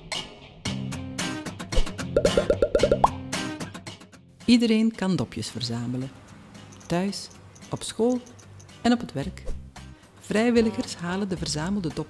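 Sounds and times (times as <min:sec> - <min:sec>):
light background music: 0:01.2 - 0:12.0
cartoon plop blips: 0:02.2 - 0:03.2.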